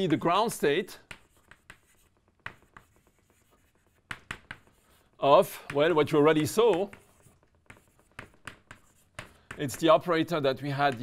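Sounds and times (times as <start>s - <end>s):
chalk scratching on chalkboard: 1.0s - 10.0s.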